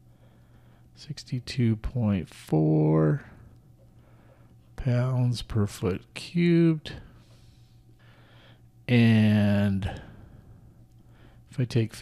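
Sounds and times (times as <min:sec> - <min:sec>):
faint steady hum: 0:00.0 - 0:12.0
soft intake of breath: 0:04.0 - 0:04.7, 0:06.9 - 0:08.7.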